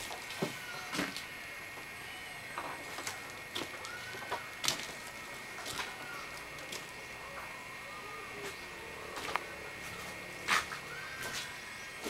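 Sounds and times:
steady high-pitched tone: 0.6s - 12.0s.

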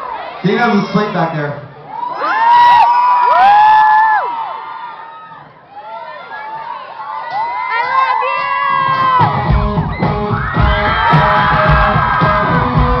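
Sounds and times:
crowd screaming and cheering: 0.0s - 13.0s
live pop-punk band playing: 9.0s - 13.0s.

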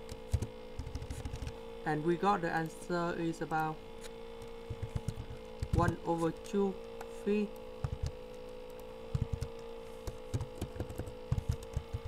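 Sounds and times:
keyboard keys clicking: 0.0s - 1.6s, 4.7s - 6.6s, 7.5s - 12.0s
electrical hum: 0.0s - 12.0s.

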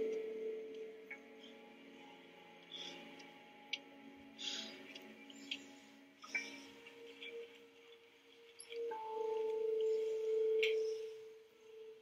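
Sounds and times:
steady pure electronic tone: 0.0s - 4.3s.

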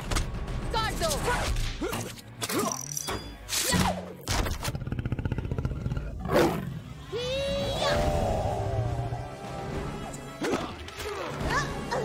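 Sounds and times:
dramatic orchestral music: 6.7s - 12.0s.

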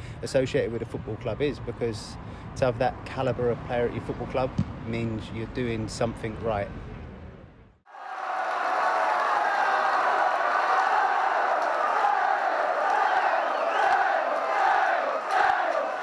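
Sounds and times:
crowd chanting and cheering: 7.9s - 16.0s.

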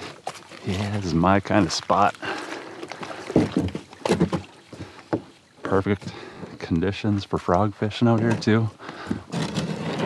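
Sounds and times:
water sloshing around kayak: 0.0s - 10.0s.

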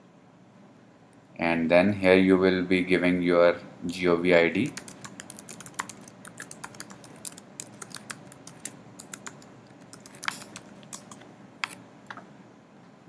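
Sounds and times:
computer keyboard typing: 4.6s - 11.8s.

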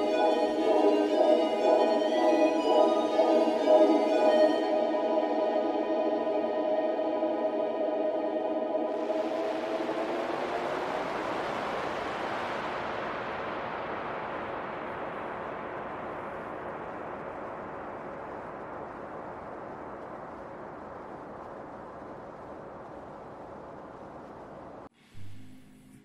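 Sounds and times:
steady rushing static noise: 0.0s - 25.7s.

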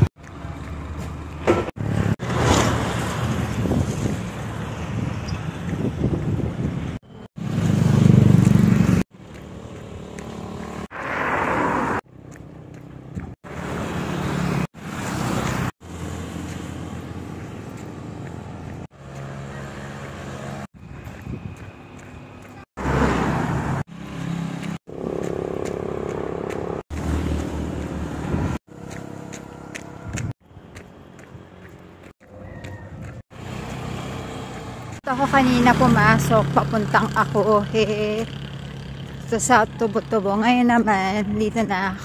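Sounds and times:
motorcycles passing: 0.0s - 42.0s.

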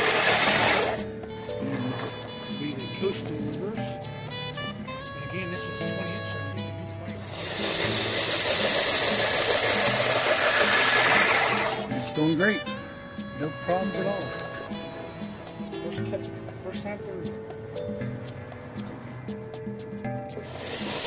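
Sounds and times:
reel mower cutting grass: 0.0s - 3.7s, 7.1s - 12.5s, 20.4s - 21.0s
background music: 0.0s - 21.0s.

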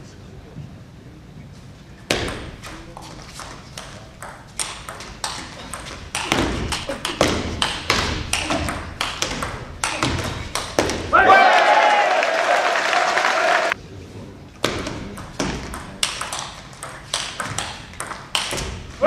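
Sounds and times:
people clapping: 10.6s - 13.8s
table tennis ball clicking: 15.7s - 18.6s.

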